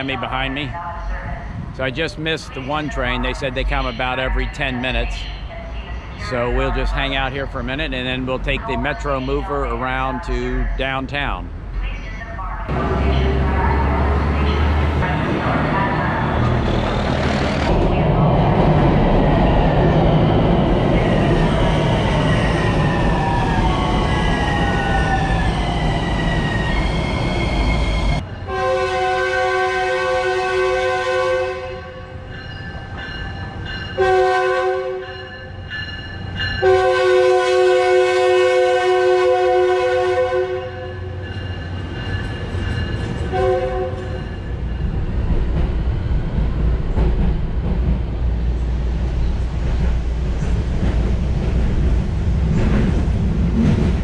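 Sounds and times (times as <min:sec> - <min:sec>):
train passing with whine: 0:12.5 - 0:54.0
multi-tone train horn blasts: 0:28.5 - 0:32.1, 0:34.0 - 0:35.1, 0:36.6 - 0:41.1, 0:43.3 - 0:44.2.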